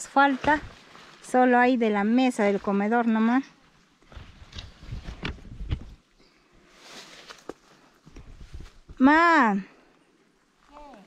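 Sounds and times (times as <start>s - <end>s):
footsteps through plants: 0.0s - 3.4s, 6.6s - 9.0s
rustling vegetation: 0.0s - 11.0s.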